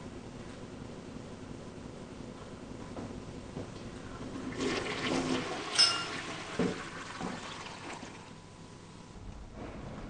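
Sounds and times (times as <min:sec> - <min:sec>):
toilet flushing: 0:04.0 - 0:08.4
sharp clink: 0:05.8 - 0:06.2.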